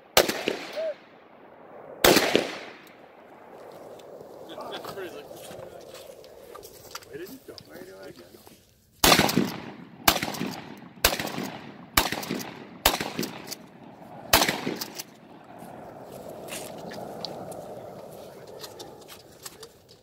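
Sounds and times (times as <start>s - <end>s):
shotgun shots echoing: 0.0s - 5.2s, 9.0s - 16.0s.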